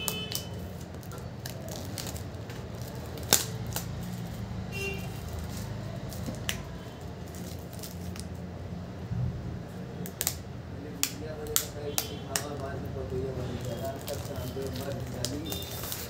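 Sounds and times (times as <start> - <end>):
plastic wrap snapping: 0.0 - 4.5, 5.1 - 8.4, 10.0 - 10.4, 11.0 - 16.0
plastic shrink-wrap crackling: 0.0 - 8.5, 11.0 - 16.0.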